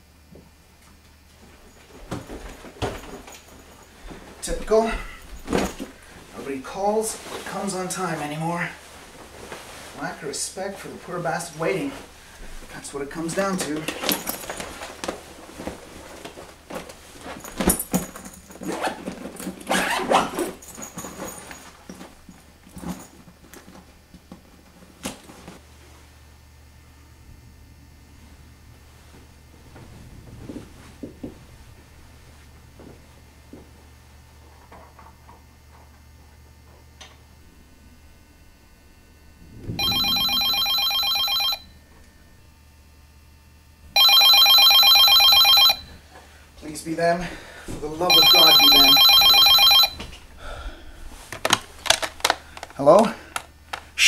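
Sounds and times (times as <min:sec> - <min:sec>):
desk telephone ringing: 0:39.8 - 0:41.8, 0:44.0 - 0:46.0, 0:48.1 - 0:50.0.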